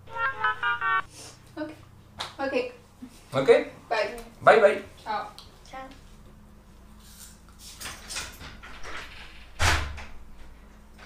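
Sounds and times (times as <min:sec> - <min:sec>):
electronic jingle: 0:00.0 - 0:01.1.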